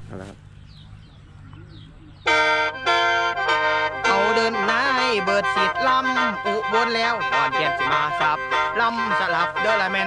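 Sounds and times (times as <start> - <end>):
mouth organ chord: 1.5 - 10.0.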